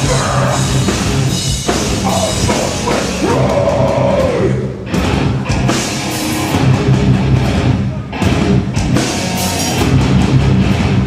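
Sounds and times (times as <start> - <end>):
distorted electric guitars: 0.0 - 11.0
drum kit: 0.0 - 11.0
hardcore band playing: 0.0 - 11.0.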